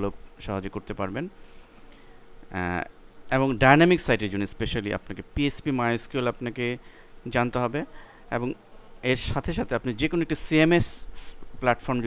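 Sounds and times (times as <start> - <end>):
man speaking: 0.0 - 1.4, 2.5 - 12.0.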